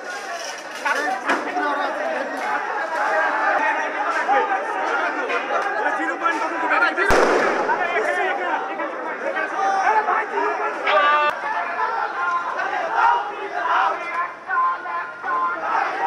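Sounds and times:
loud explosion bang: 0:07.1 - 0:08.4
crowd of men shouting: 0:07.8 - 0:16.0.

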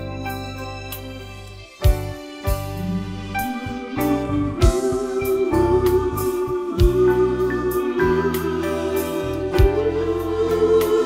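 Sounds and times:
instrumental backing track: 0:00.0 - 0:11.0.

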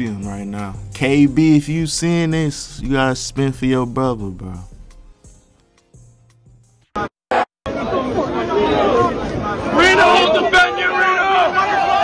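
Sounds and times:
crowd chatter: 0:07.7 - 0:12.0.

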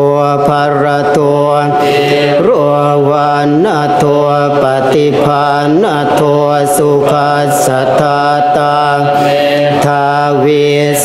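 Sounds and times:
monks chanting in unison: 0:00.0 - 0:11.0.

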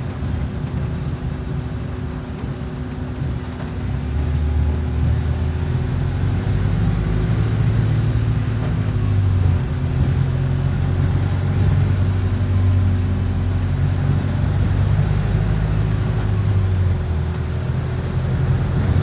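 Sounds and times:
bus engine drone: 0:00.0 - 0:19.0
road and tyre noise: 0:00.0 - 0:19.0.

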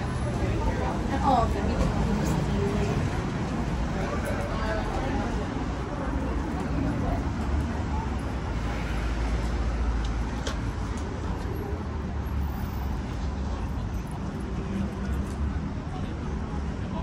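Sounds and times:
road traffic rumble: 0:00.0 - 0:17.0.

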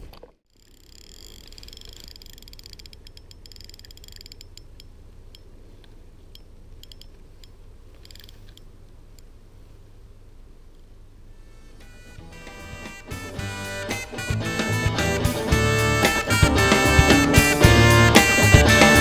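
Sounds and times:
fishing reel gears whirring: 0:00.5 - 0:04.7
fishing reel clicks: 0:00.5 - 0:05.4, 0:06.3 - 0:08.7.

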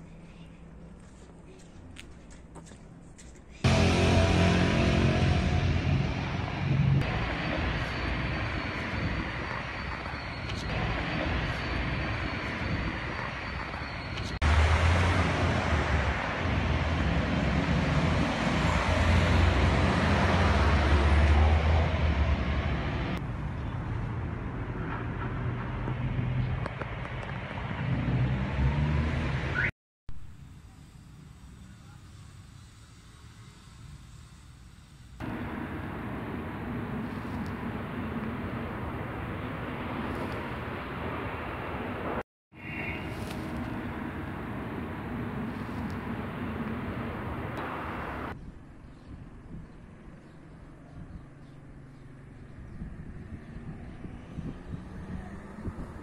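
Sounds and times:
road traffic: 0:00.0 - 0:56.0
low rumble: 0:03.6 - 0:10.1.

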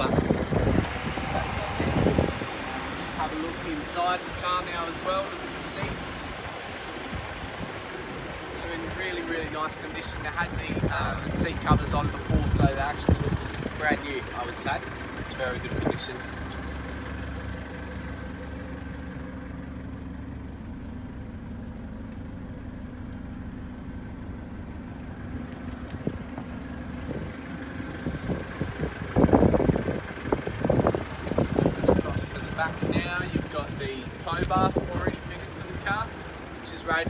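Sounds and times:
loud irregular rumbling: 0:00.0 - 0:37.0
vehicle engine idling: 0:00.0 - 0:37.0.

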